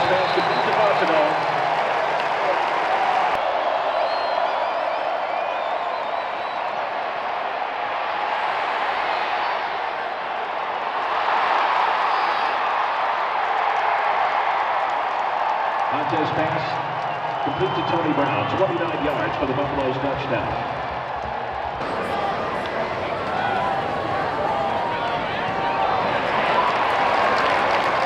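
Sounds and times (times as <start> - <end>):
stadium crowd roar: 0.0 - 28.0.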